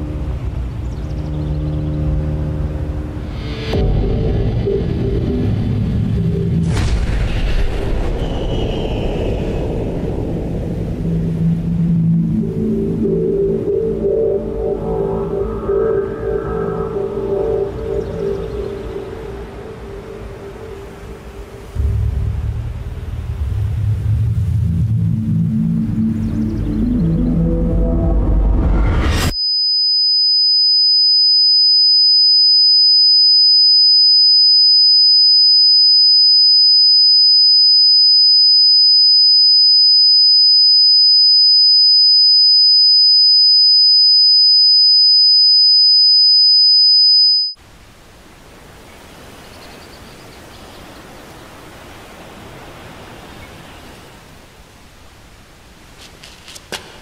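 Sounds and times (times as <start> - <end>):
faint outdoor ambience: 0.0 - 28.5, 47.6 - 57.0
high-pitched electronic tone: 11.4 - 22.1, 24.6 - 47.6.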